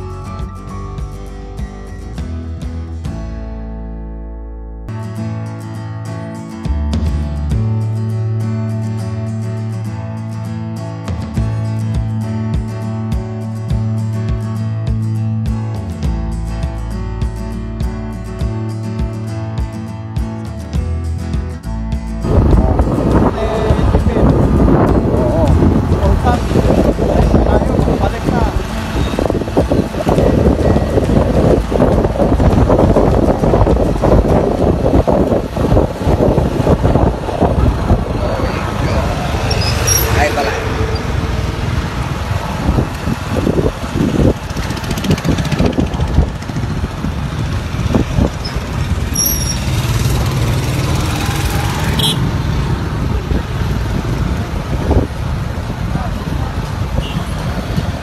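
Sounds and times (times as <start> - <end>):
street traffic: 0.0 - 3.9, 4.9 - 58.0
motorcycle engine: 22.2 - 58.0
wind rushing over microphone: 22.2 - 58.0.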